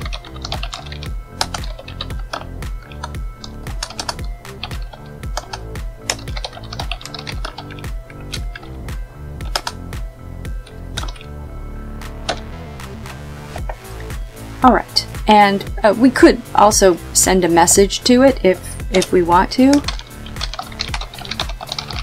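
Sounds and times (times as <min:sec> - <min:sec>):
computer keyboard typing: 0:00.0 - 0:08.8, 0:09.4 - 0:09.8, 0:10.6 - 0:11.3, 0:12.2 - 0:12.5, 0:18.9 - 0:22.0
background music with steady beat: 0:00.0 - 0:22.0.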